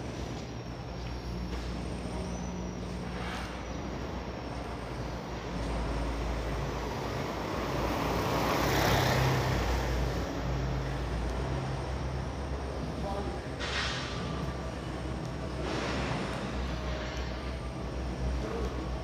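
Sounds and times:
motor vehicle passing: 3.0 - 17.5.

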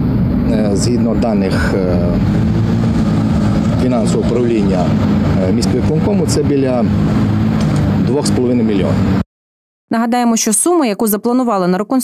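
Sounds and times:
low engine drone: 0.0 - 9.3
man speaking: 0.5 - 2.3, 3.8 - 7.0, 8.0 - 9.1.

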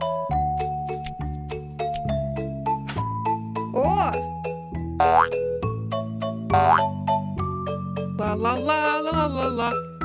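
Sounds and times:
bouncy cartoon music: 0.0 - 10.0
rising boing sound effects: 5.0 - 5.4, 6.5 - 6.9.

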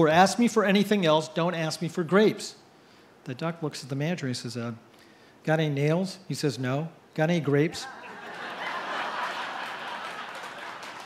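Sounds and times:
audience laughing: 7.8 - 11.0
audience clapping: 8.2 - 11.0.

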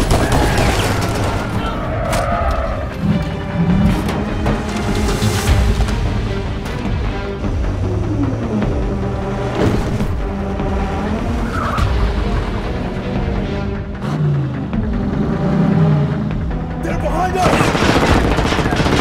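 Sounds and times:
dramatic music score: 0.0 - 19.0
vehicle engines: 0.8 - 16.8
rapid gunfire: 17.2 - 19.0.

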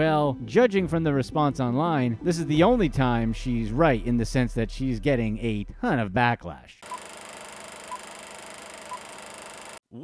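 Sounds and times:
short high beeps: 6.8 - 7.2, 7.8 - 9.8.

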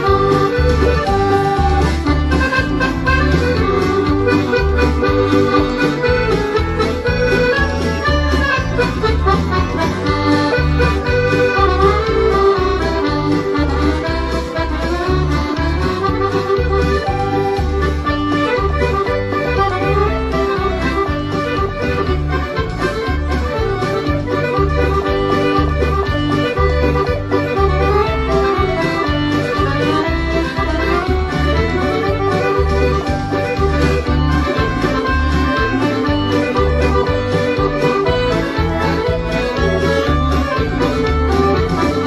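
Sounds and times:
button accordion playing a tune: 0.0 - 42.0.

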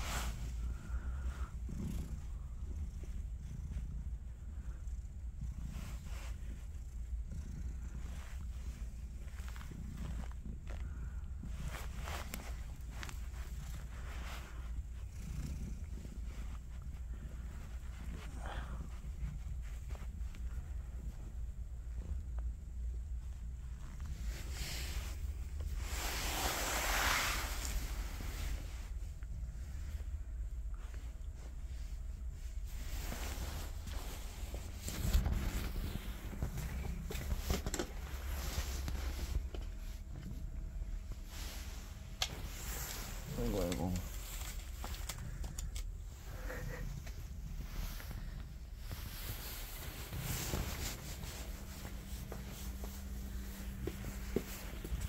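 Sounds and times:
cat purring: 0.0 - 55.0
fingers rustling in fur: 0.0 - 55.0
footsteps on hard floor: 50.4 - 55.0.

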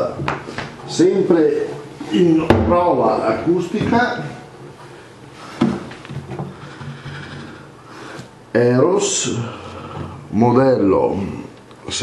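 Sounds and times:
guitar handling knocks and rubbing: 5.5 - 7.6.

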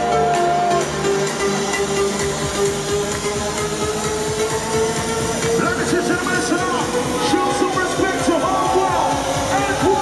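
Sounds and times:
house music over sound system: 0.0 - 10.0.

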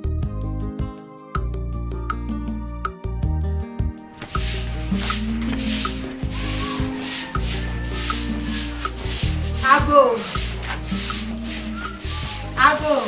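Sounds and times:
background music: 0.0 - 13.0
broom sweeping cement floor: 4.1 - 13.0.

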